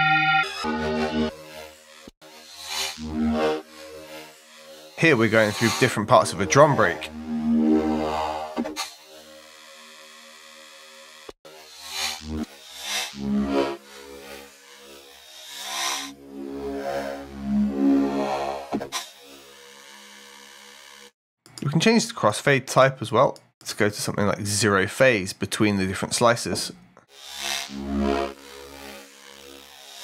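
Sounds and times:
synth low tone: 0:00.0 - 0:00.8.

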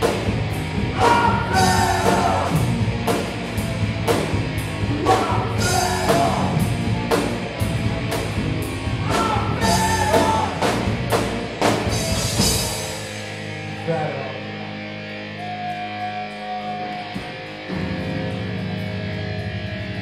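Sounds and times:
drum and cymbal hits: 0:00.0 - 0:13.3
electric bass: 0:00.0 - 0:20.0
electric guitar: 0:00.0 - 0:20.0
person singing: 0:01.0 - 0:02.6, 0:04.9 - 0:06.6.

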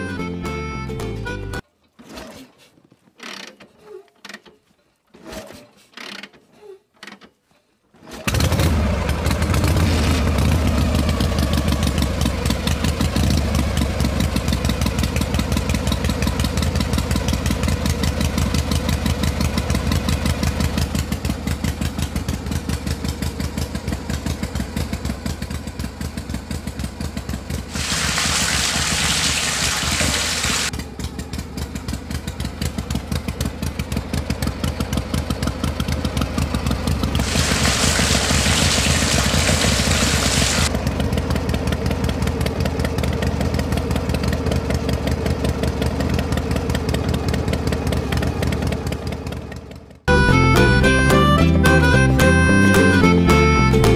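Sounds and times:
small engine chugging: 0:10.4 - 0:27.8, 0:30.2 - 0:51.3
hiss: 0:27.7 - 0:30.7, 0:37.2 - 0:40.7.

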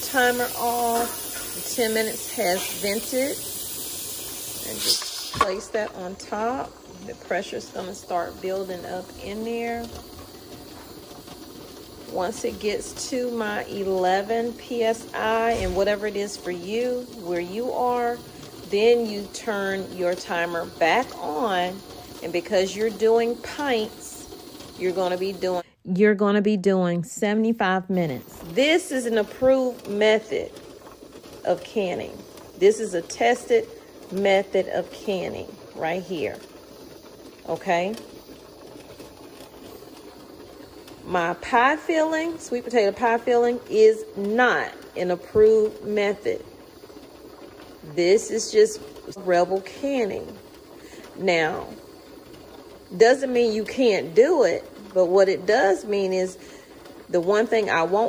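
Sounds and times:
pressure canner hissing: 0:00.0 - 0:25.7, 0:27.6 - 0:58.0.

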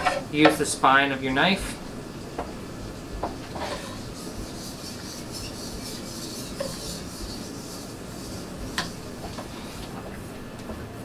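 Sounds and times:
knife scraping wooden board: 0:03.5 - 0:09.5.

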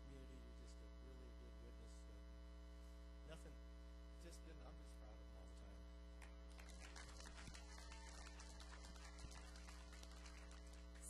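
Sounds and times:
electrical mains hum: 0:00.0 - 0:11.0
audience applause: 0:06.5 - 0:11.0.

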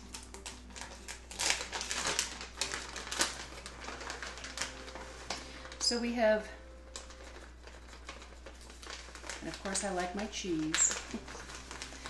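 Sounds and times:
plastic packet crinkling: 0:00.0 - 0:12.0.

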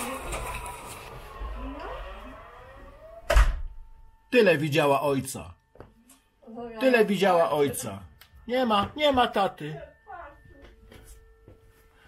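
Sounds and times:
fire siren wailing: 0:00.0 - 0:03.7.

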